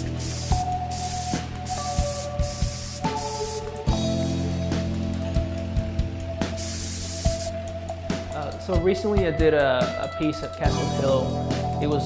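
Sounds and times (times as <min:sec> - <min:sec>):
spray can hissing: 0:00.0 - 0:03.9, 0:06.6 - 0:07.5
background music: 0:00.0 - 0:12.0.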